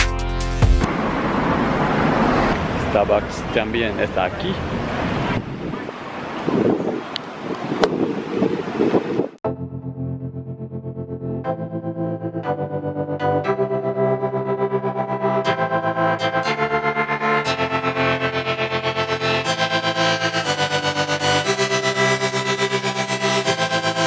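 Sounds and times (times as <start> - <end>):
street noise: 0.0 - 9.4
wind on microphone: 4.7 - 9.4
background music with sustained chords: 9.5 - 24.0.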